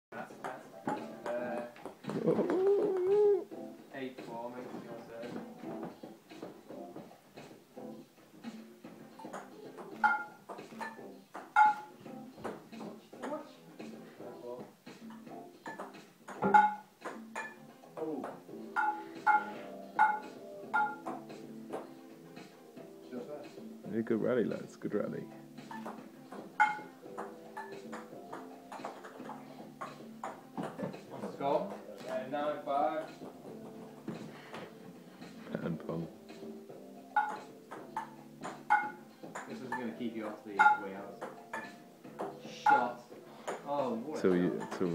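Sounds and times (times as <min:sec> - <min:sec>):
ball bouncing on wooden table: 0:09.2 - 0:13.4, 0:15.6 - 0:21.9, 0:25.6 - 0:31.8, 0:37.2 - 0:39.6, 0:40.6 - 0:42.9
ping-pong ball hit with frying pans: 0:09.2 - 0:13.4, 0:15.1 - 0:21.9, 0:25.6 - 0:31.0, 0:37.2 - 0:39.9, 0:40.6 - 0:43.7.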